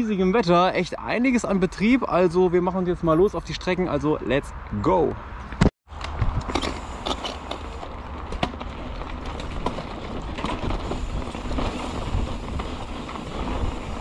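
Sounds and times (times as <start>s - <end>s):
bike clicks and rattles: 5.5s - 14.0s
bike tyres rolling on gravel: 6.5s - 14.0s.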